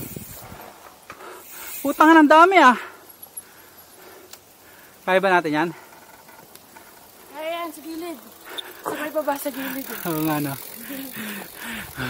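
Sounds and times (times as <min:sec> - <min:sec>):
bike tyres hissing on dirt: 0:00.0 - 0:12.0
light rattles: 0:02.8 - 0:12.0.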